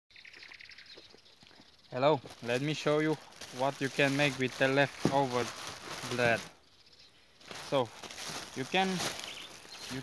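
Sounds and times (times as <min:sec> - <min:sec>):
small bird chirping: 0:00.1 - 0:03.1, 0:06.6 - 0:07.8, 0:08.6 - 0:10.0.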